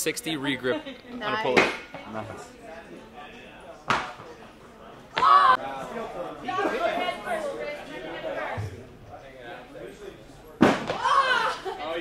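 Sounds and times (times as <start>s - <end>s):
low chatter: 0.0s - 12.0s.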